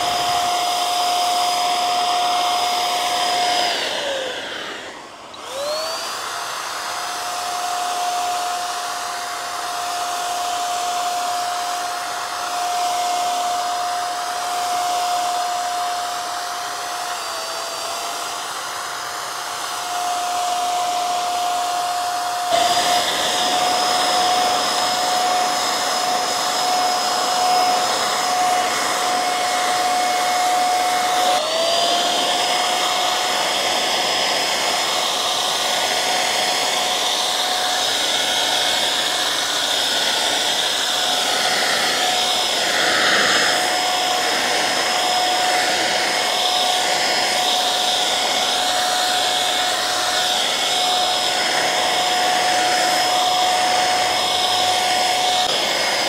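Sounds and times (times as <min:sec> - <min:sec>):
paint sprayer motor whine: 0:00.0 - 0:56.0.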